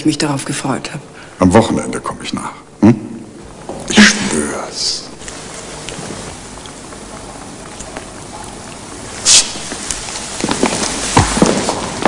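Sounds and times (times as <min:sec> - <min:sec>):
steady quiet hiss: 0:00.0 - 0:12.0.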